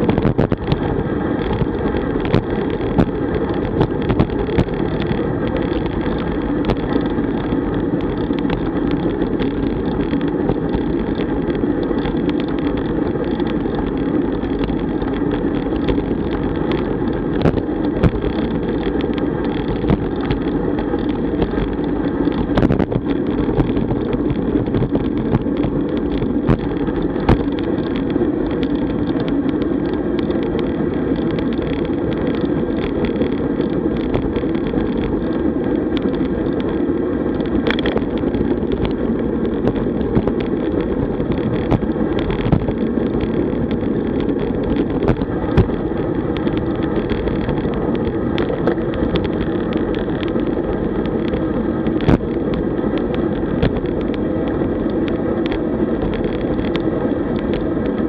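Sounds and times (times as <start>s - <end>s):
road noise: 0.0s - 58.0s
rushing wind: 0.0s - 58.0s
small clicks and knocks: 0.0s - 58.0s.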